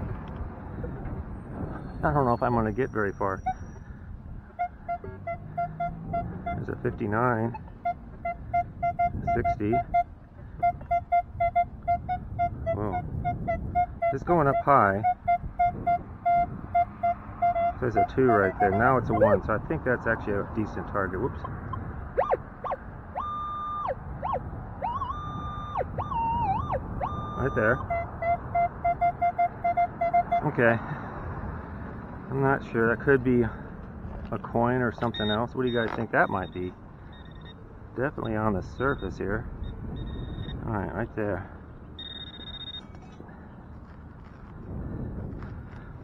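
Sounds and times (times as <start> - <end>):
metal detector beeps: 17.6 - 19.4, 23.2 - 23.9, 25.1 - 30.5, 34.9 - 40.7, 42.0 - 43.2.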